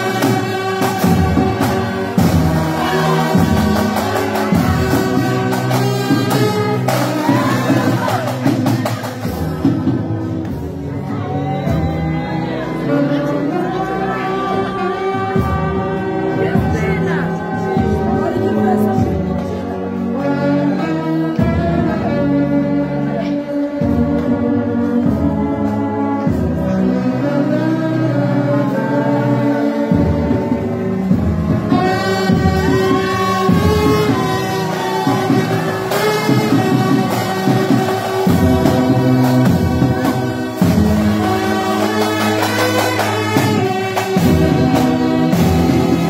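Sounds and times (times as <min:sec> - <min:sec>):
brass band playing held chords: 0:00.0 - 0:46.0.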